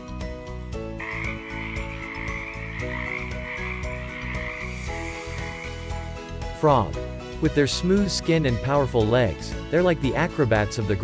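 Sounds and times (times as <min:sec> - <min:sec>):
soft background music: 0:00.0 - 0:11.0
frog calling: 0:01.0 - 0:06.3.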